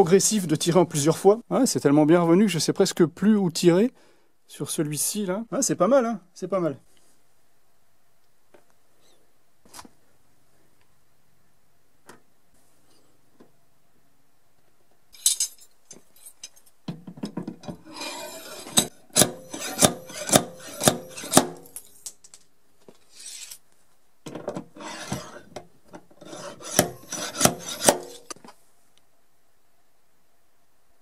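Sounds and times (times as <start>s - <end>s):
plastic tools scraping car panel: 26.2s - 28.4s.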